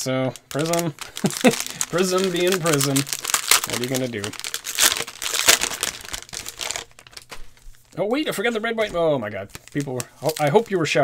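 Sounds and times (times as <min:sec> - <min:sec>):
plastic and foil wrappers crinkling: 0:00.0 - 0:11.0.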